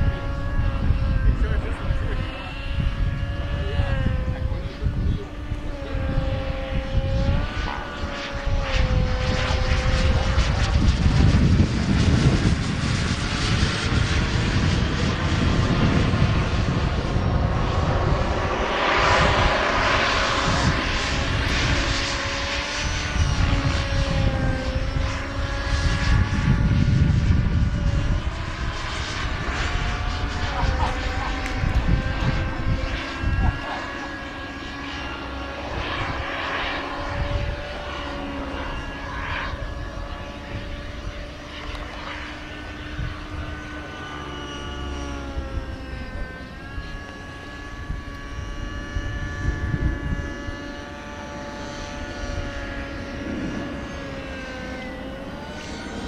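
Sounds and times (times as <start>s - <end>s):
model jet turbine whining: 0.0s - 56.0s.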